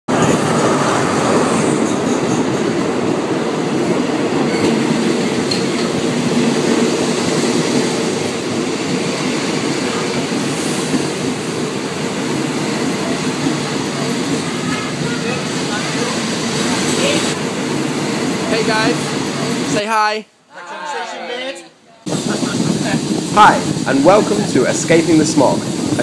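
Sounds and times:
train wheels on rails: 0.1 - 19.8, 22.1 - 26.0.

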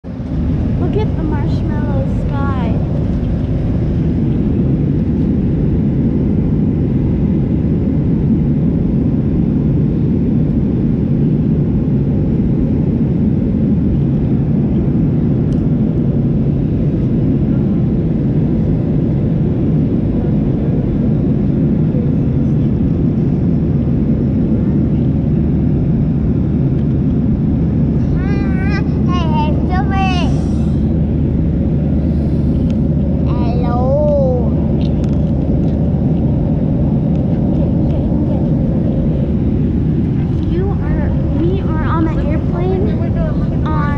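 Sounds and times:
airliner cabin engine roar: 0.0 - 43.9.

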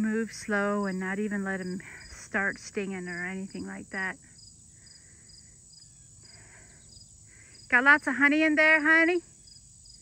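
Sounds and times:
high insect trill: 0.0 - 10.0
insects chirping: 0.0 - 10.0.

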